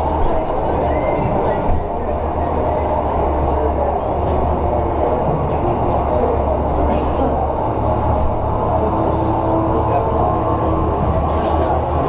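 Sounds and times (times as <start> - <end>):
engine low drone: 0.0 - 12.0.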